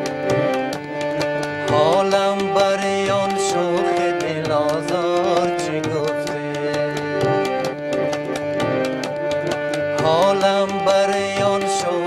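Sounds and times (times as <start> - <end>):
harmonium melody: 0.0 - 12.0
tabla strokes: 0.0 - 12.0.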